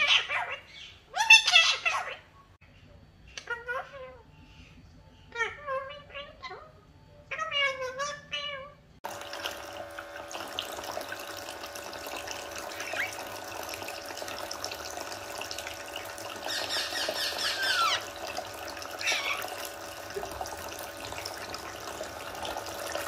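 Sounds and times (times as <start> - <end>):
faucet running thin stream: 9.0 - 23.0.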